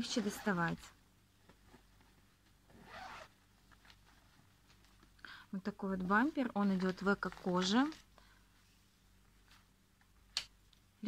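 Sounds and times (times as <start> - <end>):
zipper being pulled open: 0.0 - 0.7, 2.7 - 3.4.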